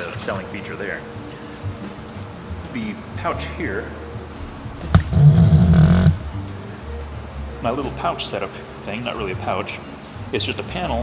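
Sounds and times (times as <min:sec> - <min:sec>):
low rumbling rub: 0:04.9 - 0:06.3.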